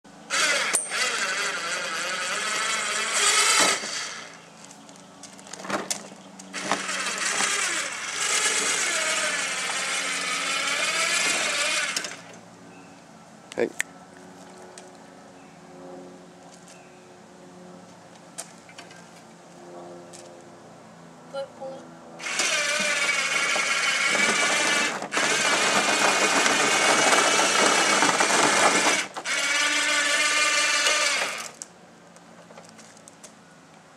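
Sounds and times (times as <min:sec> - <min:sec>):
electric motor and gear noise: 0:00.0 - 0:12.7, 0:21.4 - 0:33.2.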